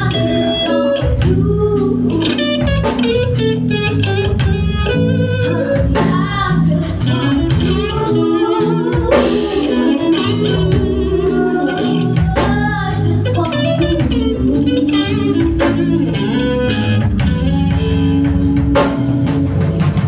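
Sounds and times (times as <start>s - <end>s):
woman singing into a microphone: 0.0s - 16.8s
bass guitar: 0.0s - 20.0s
drum kit steady beat: 0.0s - 20.0s
electric guitar: 0.0s - 20.0s.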